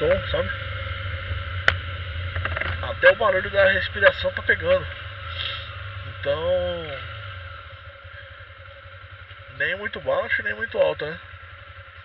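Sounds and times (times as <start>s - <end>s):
motorcycle engine low rumble: 0.0s - 12.0s
wind and road noise: 0.0s - 12.0s.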